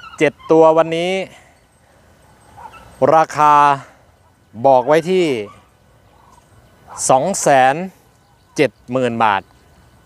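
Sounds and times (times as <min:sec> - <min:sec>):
man speaking: 0:00.2 - 0:01.5, 0:03.0 - 0:05.7, 0:06.9 - 0:08.0, 0:08.6 - 0:09.5.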